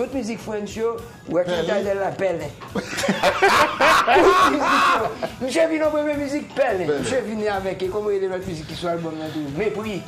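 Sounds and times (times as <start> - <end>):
man laughing: 2.7 - 5.5.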